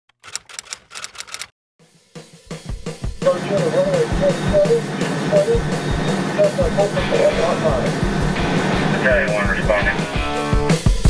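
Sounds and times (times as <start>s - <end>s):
sharp clacks: 0.1s - 1.5s.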